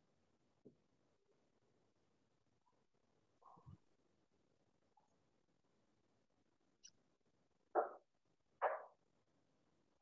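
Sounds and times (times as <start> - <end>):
dog barking: 8.6 - 9.0.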